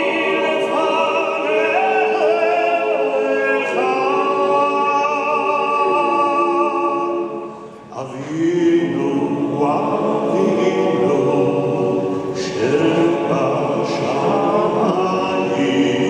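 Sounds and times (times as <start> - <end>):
male choir singing unaccompanied: 0.0 - 16.0
breath: 7.5 - 7.9.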